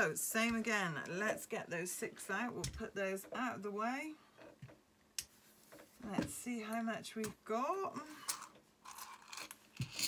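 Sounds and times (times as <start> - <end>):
coins clinking in a bowl: 8.3 - 10.0.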